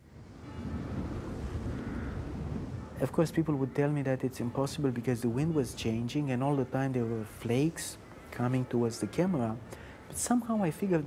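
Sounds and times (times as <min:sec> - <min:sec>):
wind blowing in a snowstorm: 0:00.0 - 0:08.8.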